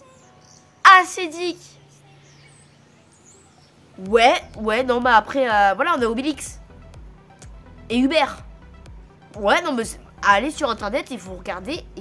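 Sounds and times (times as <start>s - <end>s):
faint high chirping: 0.0s - 5.4s
low steady hum: 0.0s - 12.0s.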